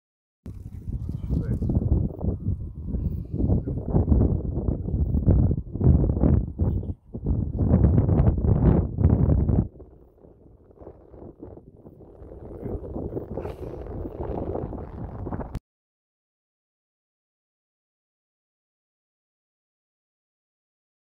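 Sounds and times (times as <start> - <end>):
wind buffeting microphone: 0.5 - 15.6.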